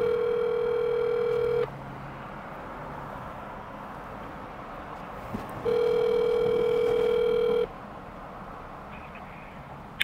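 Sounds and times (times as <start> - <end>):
phone ringback tone: 0.0 - 1.7, 5.6 - 7.7
car cabin hum: 5.1 - 7.7.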